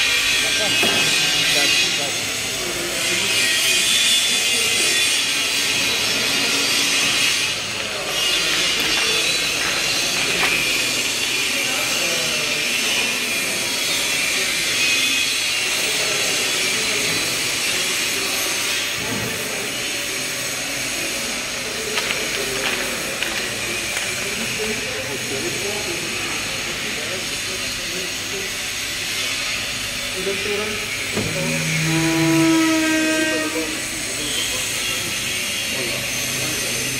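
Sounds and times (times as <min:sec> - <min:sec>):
faint voices: 0:00.0 - 0:36.9.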